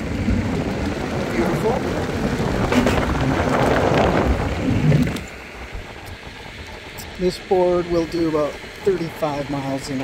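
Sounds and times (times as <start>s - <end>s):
wind buffeting microphone: 0.0s - 8.8s
skateboard wheels rumbling on asphalt: 0.0s - 10.0s.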